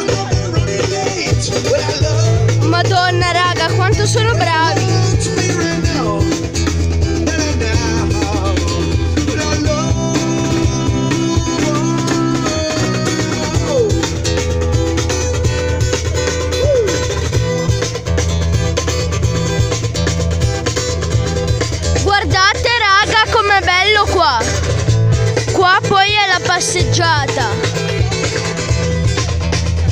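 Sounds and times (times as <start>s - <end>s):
guitar playing: 0.0s - 29.9s
sustained low bass notes: 0.0s - 29.9s.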